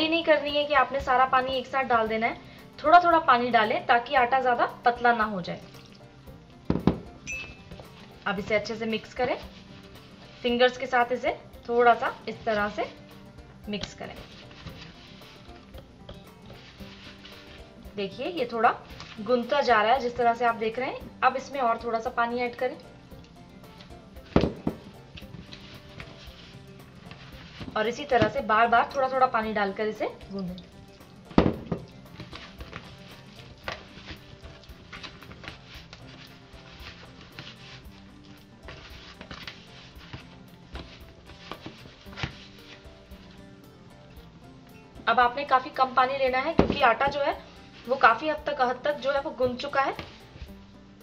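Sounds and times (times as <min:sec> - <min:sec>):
soft background music: 0:00.0 - 0:51.0
fingers rustling in dough: 0:07.6 - 0:11.2, 0:11.9 - 0:21.6, 0:22.8 - 0:44.3, 0:46.8 - 0:49.0.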